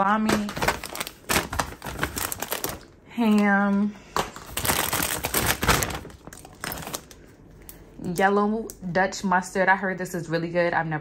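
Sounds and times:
plastic bag and packaging rustling: 0.0 - 7.4.

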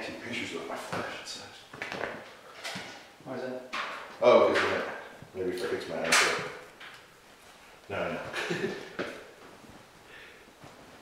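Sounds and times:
people talking: 0.0 - 1.7, 3.3 - 6.6, 7.9 - 8.8.

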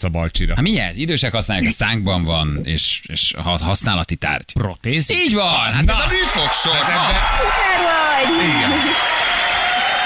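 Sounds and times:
people cheering and whooping: 5.9 - 10.0
applause: 6.2 - 10.0.

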